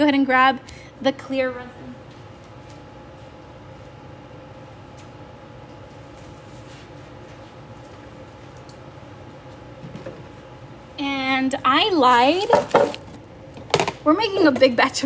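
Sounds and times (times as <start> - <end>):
air conditioning unit humming: 0.0 - 15.0.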